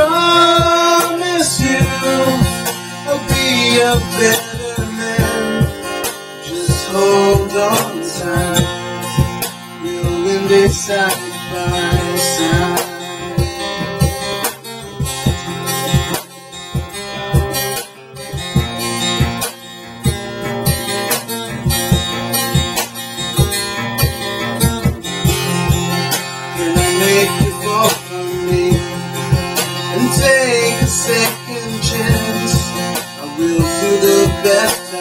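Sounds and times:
cajon hits: 0:00.0 - 0:31.4
acoustic guitar strumming: 0:00.0 - 0:35.0.

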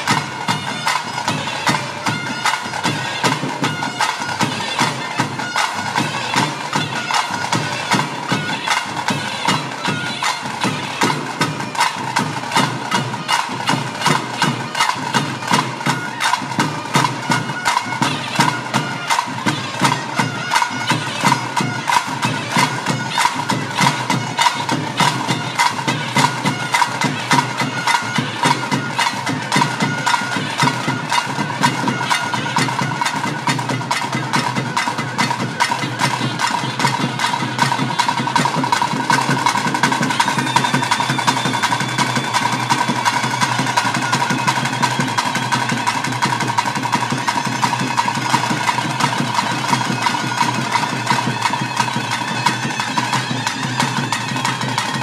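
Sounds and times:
fast continuous drumming: 0:00.0 - 0:55.0
wind instrument long notes: 0:00.0 - 0:55.0.

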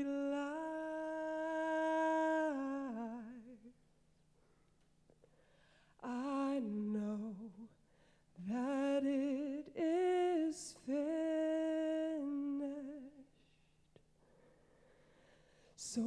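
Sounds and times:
woman singing with vibrato: 0:00.0 - 0:03.8, 0:06.0 - 0:07.8, 0:08.4 - 0:13.3, 0:15.8 - 0:16.0.

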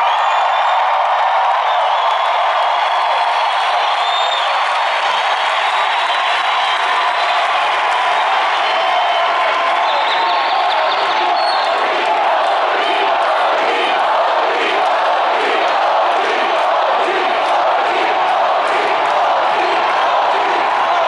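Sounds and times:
crowd cheering and applauding: 0:00.0 - 0:21.0.

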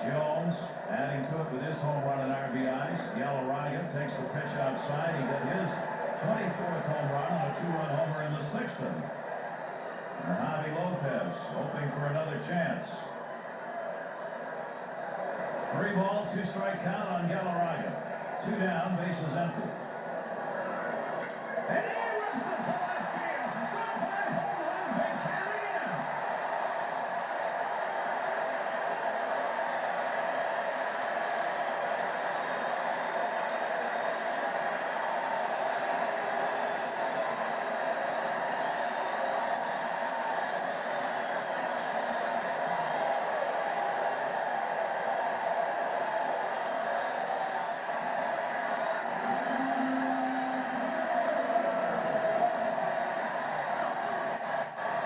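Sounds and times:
stadium crowd cheering: 0:00.0 - 0:55.0.

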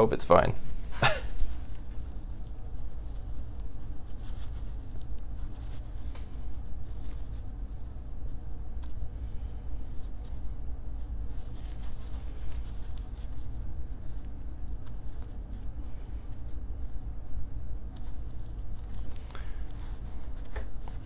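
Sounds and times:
paper towel rustling: 0:00.0 - 0:21.0
steady low rumble: 0:00.0 - 0:21.0.

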